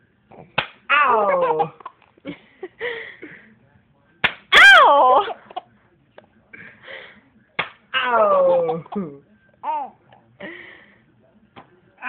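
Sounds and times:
hand slap: 0.6 - 0.8, 4.2 - 4.5, 7.6 - 7.8
baby squealing laugh: 0.9 - 1.9.

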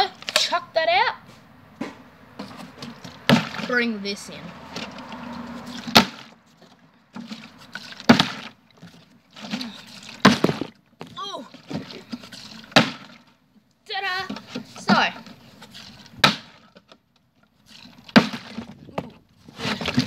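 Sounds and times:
plastic bottle knocking on concrete: 10.3 - 11.1.

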